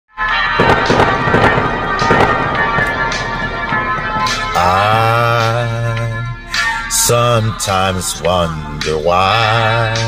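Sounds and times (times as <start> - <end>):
sharp drum hits: 0.6 - 5.8.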